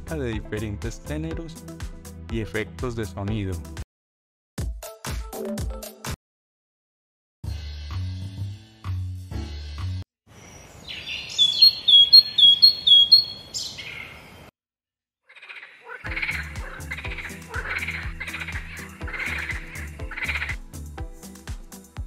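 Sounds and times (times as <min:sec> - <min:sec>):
short high bird chirps: 0:10.9 - 0:14.0
repeating swamp animal call: 0:10.9 - 0:14.4, 0:15.2 - 0:20.6.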